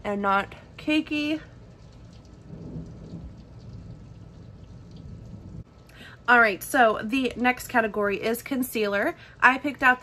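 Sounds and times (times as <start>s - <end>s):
low rumble: 1.6s - 5.8s.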